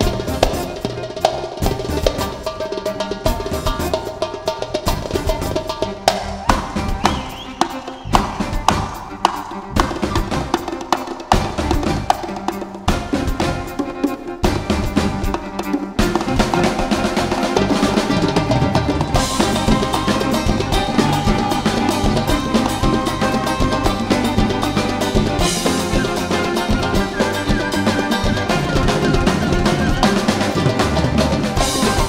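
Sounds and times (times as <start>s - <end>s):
orchestra playing instrumental: 0.0s - 32.0s.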